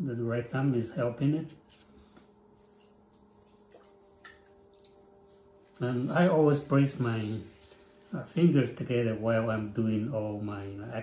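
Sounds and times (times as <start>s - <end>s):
potter's wheel humming: 0.0s - 11.0s
hands working wet clay: 1.2s - 8.3s.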